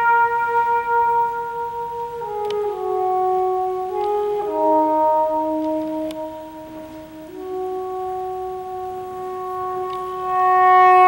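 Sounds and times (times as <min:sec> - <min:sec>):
soprano saxophone melody: 0:00.0 - 0:11.0.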